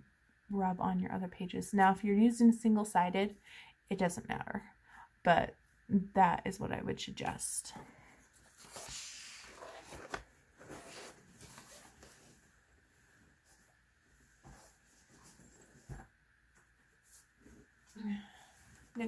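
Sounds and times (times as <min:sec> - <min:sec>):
fabric rustling: 0:08.3 - 0:19.0.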